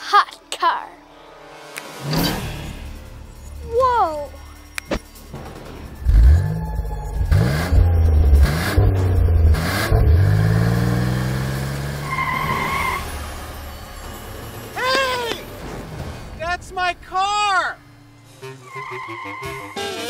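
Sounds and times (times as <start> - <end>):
car engine revving: 5.2 - 14.8
car driving off: 5.2 - 16.4.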